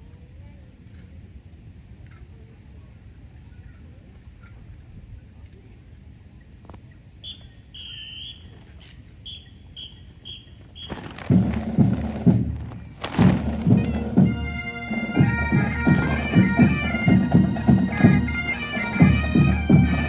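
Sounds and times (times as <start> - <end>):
high whistle-like tones: 7.2 - 11.2
drums: 10.8 - 20.0
bagpipes playing melody: 13.5 - 20.0.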